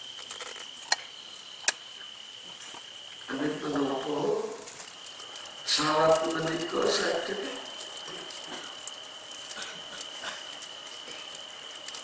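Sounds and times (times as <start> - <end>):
cricket trilling: 0.0 - 12.0.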